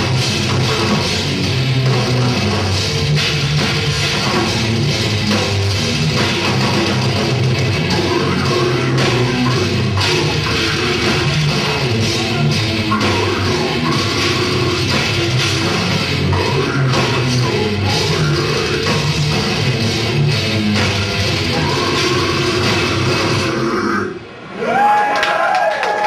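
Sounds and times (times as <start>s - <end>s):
fast drum kit: 0.0s - 23.9s
distorted electric guitars: 0.0s - 24.4s.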